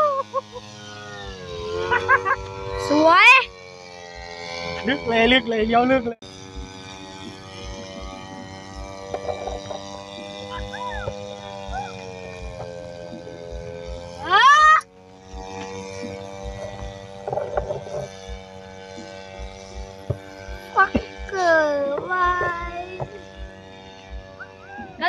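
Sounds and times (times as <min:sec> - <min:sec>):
two-stroke engine droning: 0:00.0 - 0:25.0.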